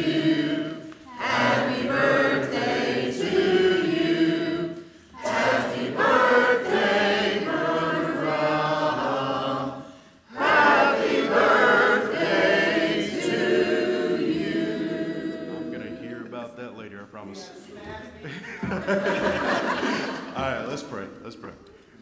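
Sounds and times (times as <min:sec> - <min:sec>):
congregation singing a hymn: 0:00.0 - 0:16.6, 0:18.6 - 0:21.0.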